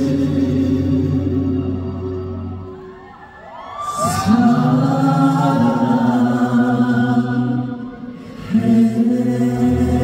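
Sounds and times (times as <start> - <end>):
live concert music: 0.0 - 10.0
audience cheering: 2.4 - 6.2.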